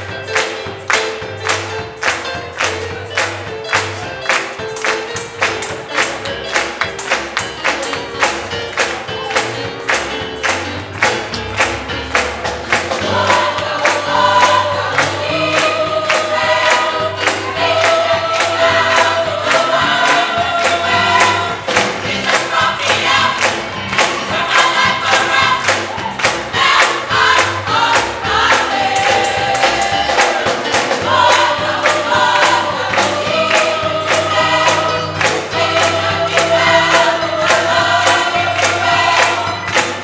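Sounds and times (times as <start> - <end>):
hand claps: 0.0 - 28.1, 29.0 - 40.0
gospel choir singing: 0.0 - 40.0.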